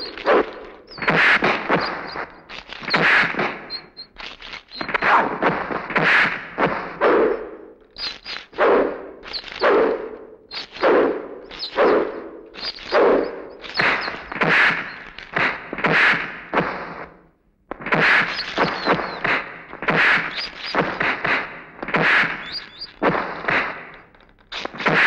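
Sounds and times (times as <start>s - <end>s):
punch thuds with swishes: 4.9s - 7.5s, 10.8s - 17.1s, 17.8s - 23.9s.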